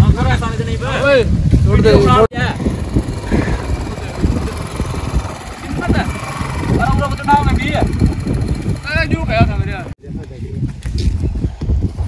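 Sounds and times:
steady low rumble: 2.4s - 10.0s.

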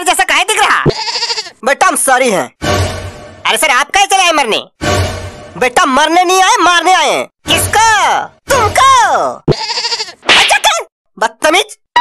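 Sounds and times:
wavering bleat-like cry: 0.9s - 1.6s, 9.5s - 10.2s
cartoon smack: 10.2s - 10.8s.

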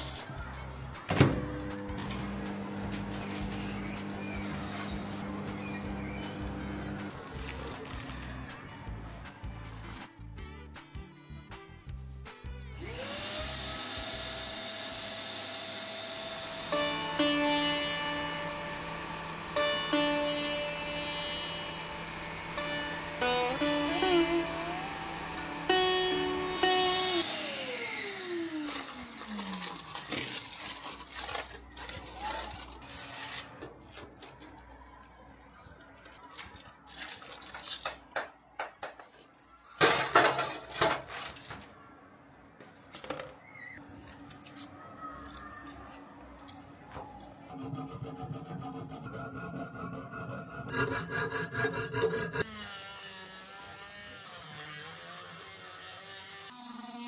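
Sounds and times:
background music: 0.0s - 14.7s, 16.0s - 28.4s.

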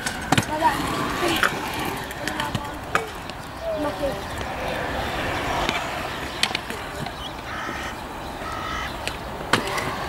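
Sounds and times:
scooter deck clacks: 0.0s - 3.5s
scooter wheels rolling on concrete: 0.0s - 10.0s.

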